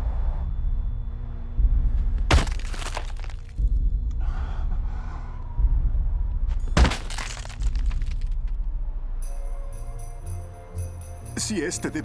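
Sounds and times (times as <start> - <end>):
low pulsing film music: 0.0 - 12.0.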